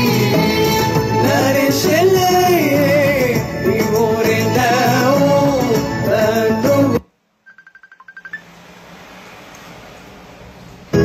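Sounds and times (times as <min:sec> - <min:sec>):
person singing: 0:00.0 - 0:07.0.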